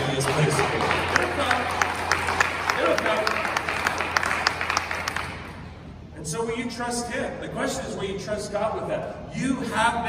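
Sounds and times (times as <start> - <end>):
congregation applauding: 0.0 - 5.7.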